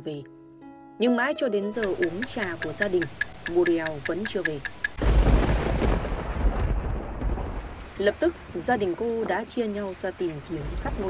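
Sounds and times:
thunder rumbling: 0:01.8 - 0:11.0.

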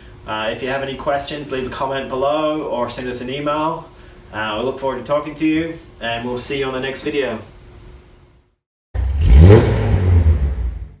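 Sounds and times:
car engine revving: 0:09.0 - 0:11.0.

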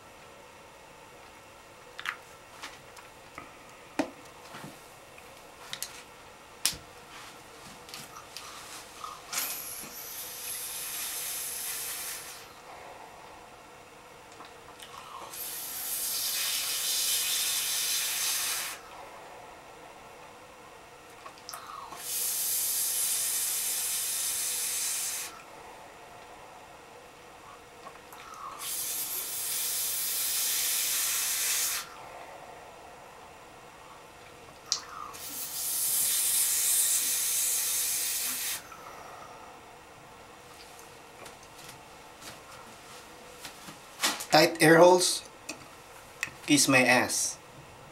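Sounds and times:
air hissing through vape: 0:09.1 - 0:12.6, 0:15.1 - 0:18.8, 0:21.6 - 0:25.4, 0:28.3 - 0:32.0, 0:34.7 - 0:39.2.

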